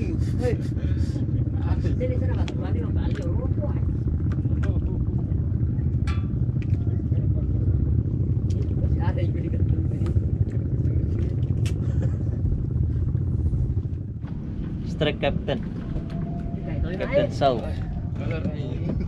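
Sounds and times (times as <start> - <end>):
small boat engine running: 0.0 - 19.0.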